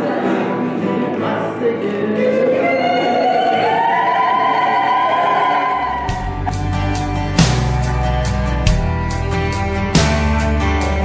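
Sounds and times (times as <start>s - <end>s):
choir singing held notes: 0.0s - 7.1s.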